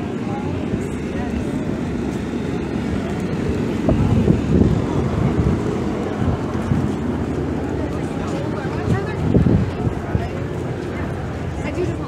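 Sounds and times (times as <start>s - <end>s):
crowd chatter: 0.0s - 12.0s
wind buffeting microphone: 0.0s - 12.0s.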